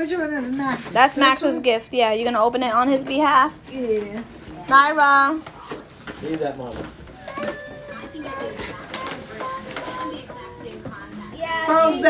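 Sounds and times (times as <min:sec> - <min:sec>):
plastic bag crinkling: 0:06.2 - 0:10.9.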